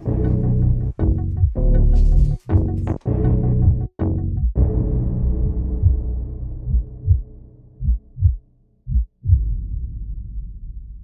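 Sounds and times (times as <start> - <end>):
music: 0.0 - 9.0
heartbeat double thump: 5.4 - 9.6.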